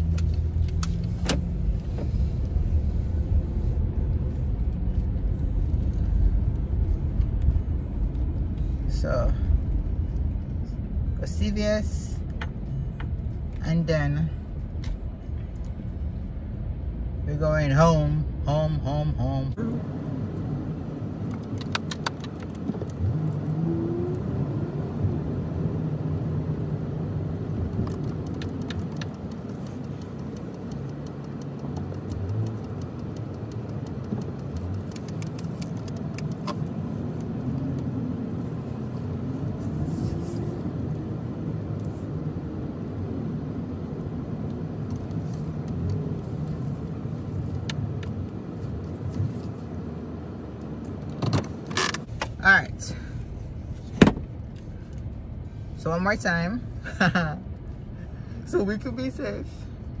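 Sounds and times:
car road and engine rumble: 0.0 - 60.0.

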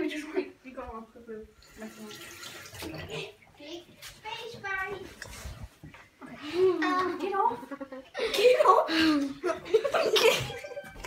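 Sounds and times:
water running from tap: 1.6 - 3.3.

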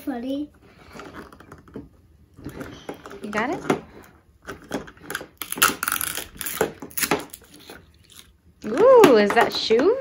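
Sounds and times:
foil wrapper crinkling and tearing: 5.4 - 8.4.

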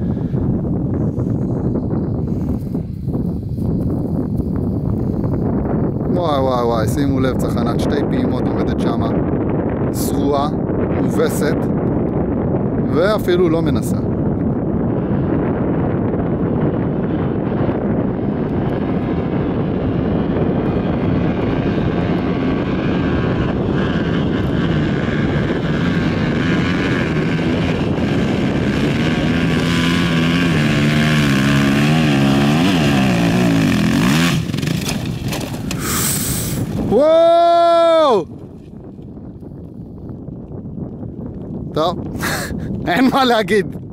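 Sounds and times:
dirt bike engine revving: 18.6 - 37.0.

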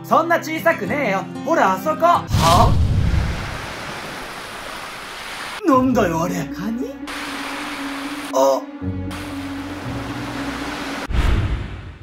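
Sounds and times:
ocean waves rushing: 2.3 - 5.6, 7.1 - 8.3, 9.1 - 11.7.

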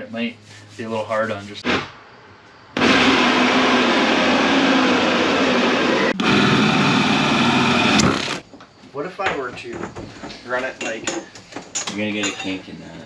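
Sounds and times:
shop vacuum running: 2.8 - 8.4.

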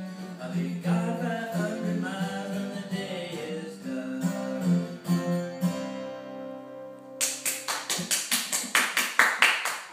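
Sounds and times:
hand clapping: 7.2 - 9.9.

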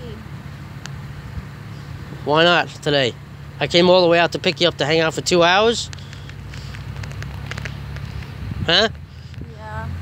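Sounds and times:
car engine idling: 0.0 - 10.0
microphone crackling: 5.6 - 9.5.

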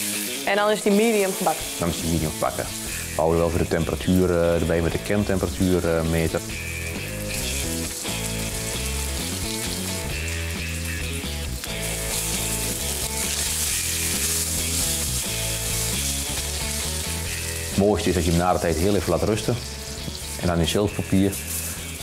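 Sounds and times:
background music: 0.0 - 22.0
steak sizzling in a pan: 0.0 - 22.0.

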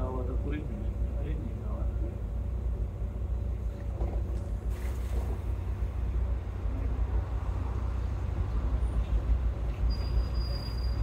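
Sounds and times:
diesel bus engine running: 0.0 - 11.0.

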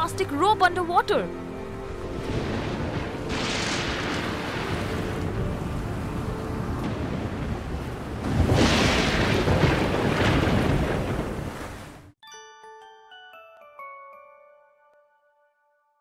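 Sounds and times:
waves: 1.6 - 12.2
surf surge: 1.9 - 12.1
wind rushing: 1.9 - 12.1.

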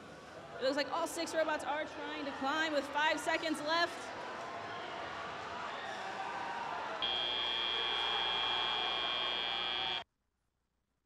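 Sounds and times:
background arena noise: 0.0 - 10.0
electronic buzzer tone: 7.0 - 10.0.

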